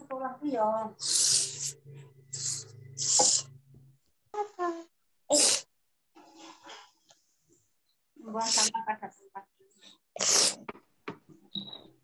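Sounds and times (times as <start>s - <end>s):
person sneezing: 5.3s - 5.7s, 10.2s - 10.7s.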